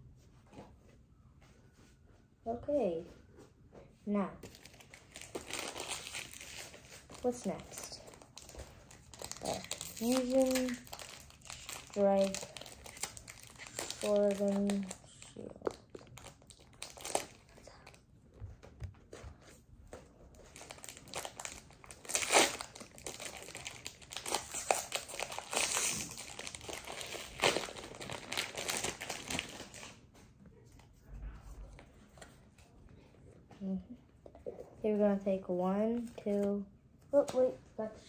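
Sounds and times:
foil wrapper crinkling: 4.4s - 18.0s, 20.4s - 30.0s.

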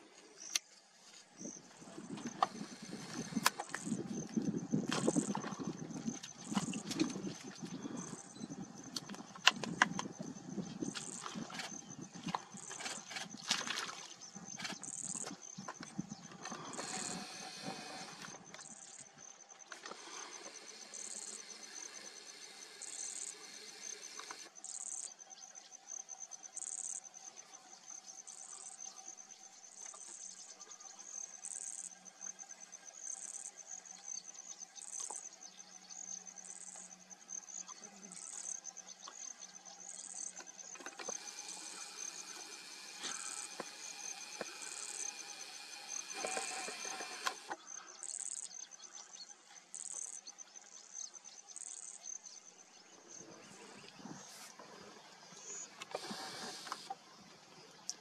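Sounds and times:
cricket trill: 1.4s - 58.0s
insect chirping in bursts: 1.4s - 58.0s.

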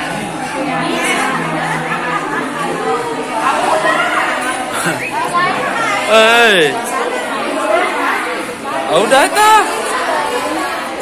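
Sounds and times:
women and children chattering: 0.0s - 11.0s.

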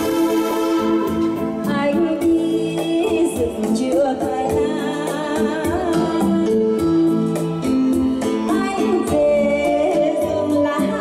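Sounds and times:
electronic keyboard with programmed beat: 0.0s - 2.5s
woman singing into microphone: 0.0s - 11.0s.

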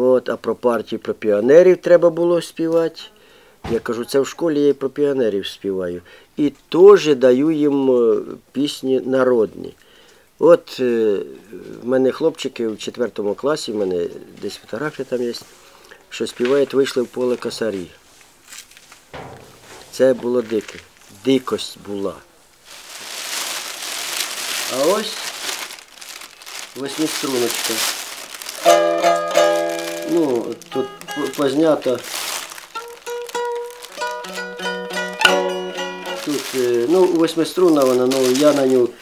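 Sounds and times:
man drawing breath: 3.2s - 3.6s, 9.8s - 10.3s, 15.5s - 16.1s
soft rustle: 13.7s - 28.8s, 29.4s - 34.1s, 36.2s - 39.0s
mandolin plucking and strumming: 28.6s - 31.9s, 32.8s - 37.4s.

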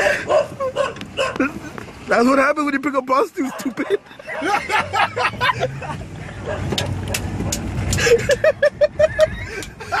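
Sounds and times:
car engine and road rumble: 0.0s - 10.0s
man laughing hard: 3.5s - 6.5s, 8.0s - 10.0s.

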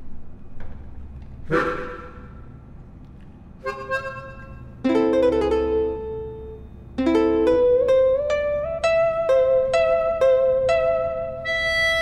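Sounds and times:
musical chord: 3.6s - 12.0s.

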